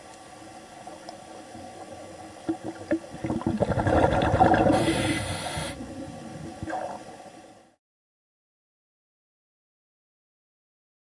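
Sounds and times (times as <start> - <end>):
regulator bubbles gurgling underwater: 0.6 - 7.6
regulator hiss: 4.5 - 6.4.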